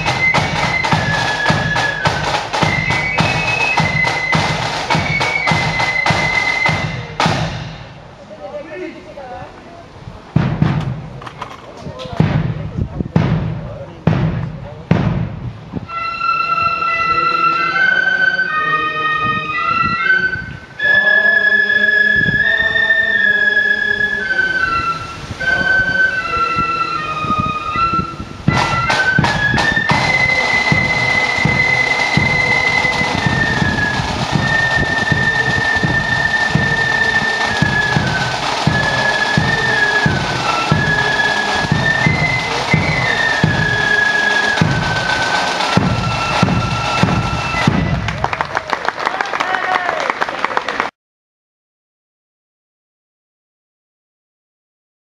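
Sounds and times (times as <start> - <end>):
flutes playing melody: 0.0 - 8.0, 15.8 - 48.5
drum roll: 0.0 - 8.2, 10.3 - 15.6, 28.5 - 48.8
regular drum beat: 0.0 - 8.2, 10.3 - 11.4, 12.1 - 15.6, 28.5 - 48.4.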